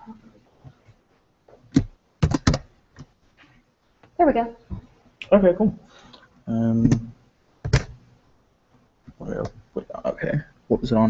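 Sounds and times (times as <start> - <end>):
keyboard keystrokes: 1.8 - 2.7.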